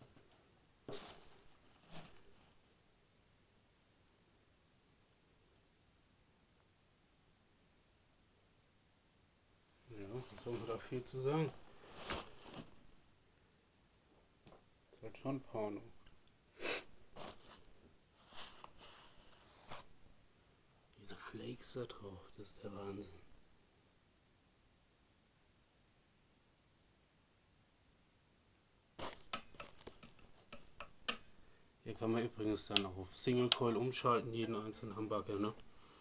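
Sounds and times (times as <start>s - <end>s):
handling rustles: 0.0s - 2.7s, 9.9s - 13.0s, 17.1s - 20.0s.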